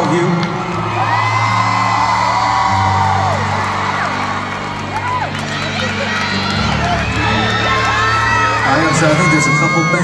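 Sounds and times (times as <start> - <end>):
fans screaming: 0.0 - 10.0.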